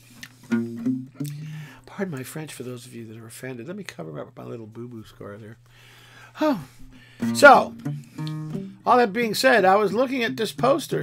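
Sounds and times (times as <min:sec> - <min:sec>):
acoustic guitar notes: 0:00.1 - 0:02.1, 0:06.4 - 0:11.0.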